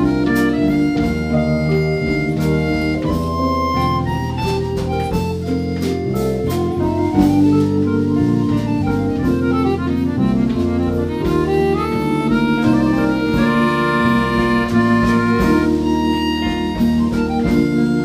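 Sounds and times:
jazz-folk ensemble playing: 0.0s - 18.0s.

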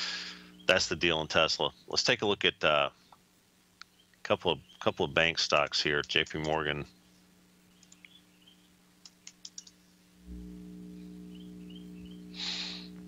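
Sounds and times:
short hiss: 0.0s - 0.5s, 12.3s - 13.0s
low electrical hum: 0.0s - 13.0s
keyboard keystrokes and clicks: 9.0s - 9.8s.

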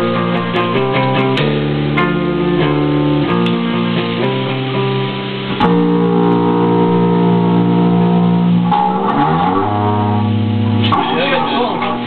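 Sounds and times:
electric guitars playing chords: 0.0s - 12.0s.

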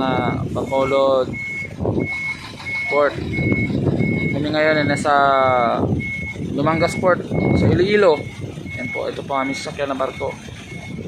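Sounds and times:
truck engine rumble: 0.0s - 11.0s
truck reversing alarm beeping: 0.0s - 11.0s.

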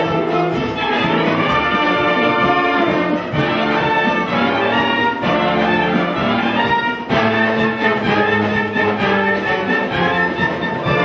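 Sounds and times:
concert wind band playing: 0.0s - 11.0s.

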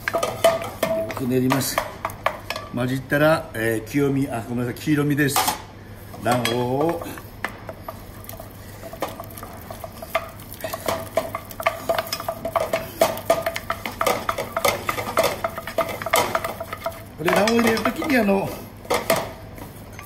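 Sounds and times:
spatula scraping and knocking pan: 0.0s - 2.7s, 6.1s - 20.0s
person speaking: 6.2s - 7.2s, 17.2s - 18.7s.

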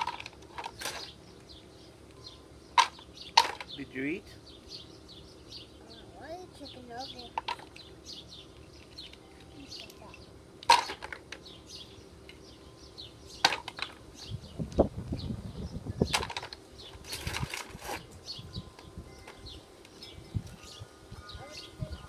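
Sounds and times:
small birds chirping: 0.4s - 22.0s.

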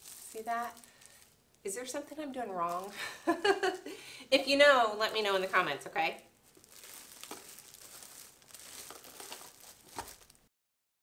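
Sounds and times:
plastic film crinkling: 0.0s - 3.4s, 4.9s - 10.5s.

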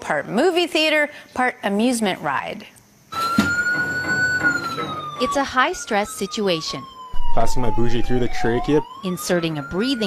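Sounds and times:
ambulance siren wailing: 3.1s - 10.0s
low rumble: 7.2s - 8.8s.

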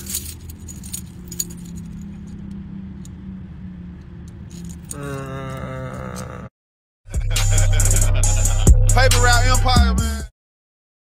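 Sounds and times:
metal chains jangling: 0.0s - 3.1s, 4.2s - 5.3s.

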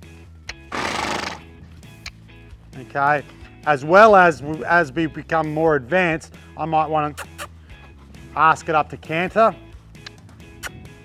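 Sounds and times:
horse snorting: 0.6s - 1.5s, 7.1s - 8.3s.

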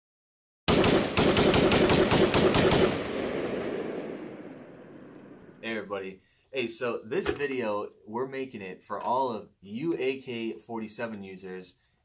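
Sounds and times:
rapid automatic gunfire: 0.7s - 4.0s
gunfire echo: 0.7s - 5.6s.

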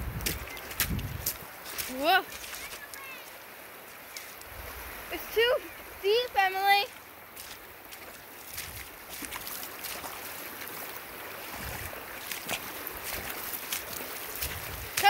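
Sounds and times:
wind rumble on microphone: 0.0s - 1.5s, 11.5s - 12.0s, 14.4s - 15.0s
river water rushing over gravel: 0.0s - 15.0s.

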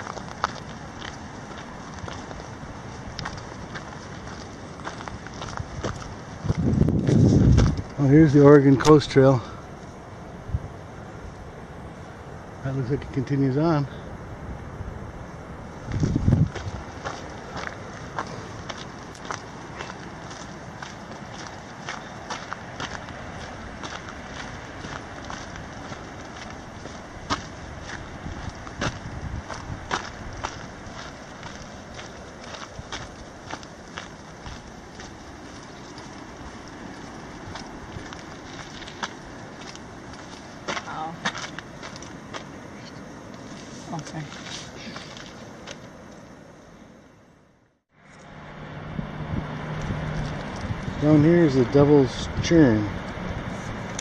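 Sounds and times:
low rumble on microphone: 0.0s - 9.6s, 13.9s - 20.2s
footsteps crunching on trail: 0.0s - 10.0s, 15.7s - 46.5s
outdoor hiss: 0.0s - 54.0s.

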